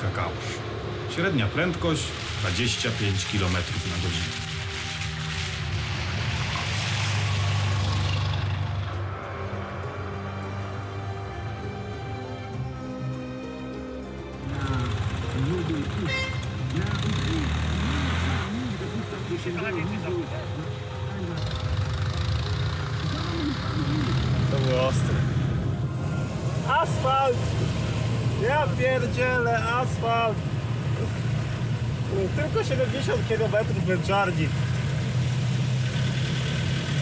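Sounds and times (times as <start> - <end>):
background music: 0.0 - 34.6
road noise: 0.0 - 37.0
small car engine running: 14.5 - 25.6, 30.8 - 37.0
voices: 22.6 - 25.3.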